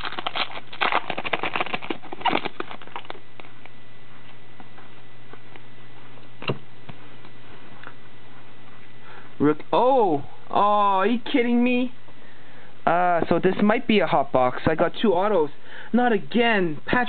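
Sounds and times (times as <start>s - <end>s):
foil wrapper crinkling and tearing: 0.0s - 3.6s
low steady hum: 0.0s - 17.0s.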